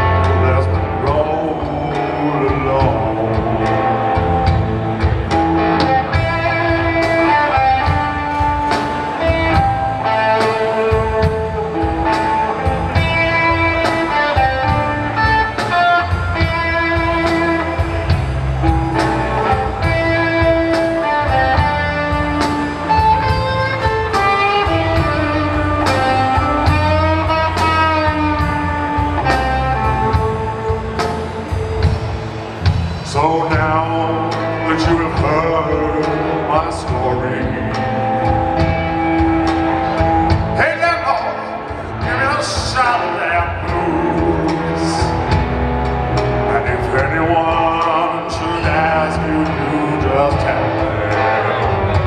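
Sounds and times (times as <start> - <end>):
bass: 0.0 - 52.0
drum kit: 0.0 - 52.0
electric guitar lead: 0.0 - 52.0.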